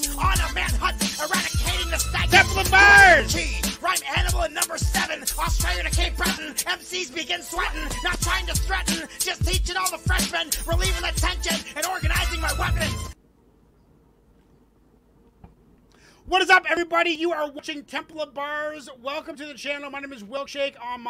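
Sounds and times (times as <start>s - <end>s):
man rapping over a beat: 0.0s - 13.2s.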